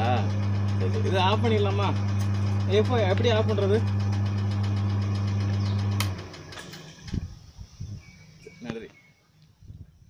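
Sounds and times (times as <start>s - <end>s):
machine humming and ticking: 0.0s - 6.7s.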